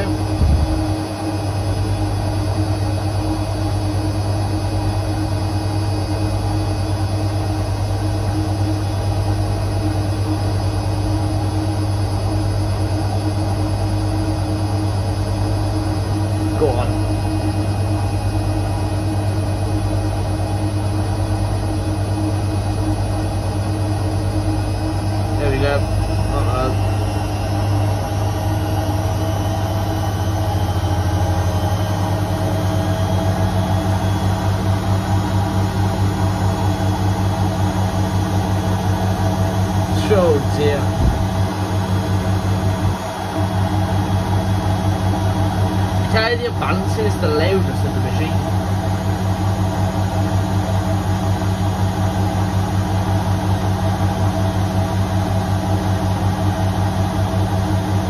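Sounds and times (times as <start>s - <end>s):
rhythmic throbbing pulse: 0.0s - 49.9s
washing machine spinning: 0.0s - 58.0s.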